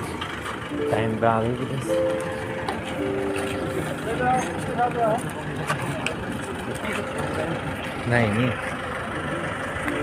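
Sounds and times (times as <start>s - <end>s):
street and traffic noise: 0.0s - 10.0s
people talking: 0.7s - 10.0s.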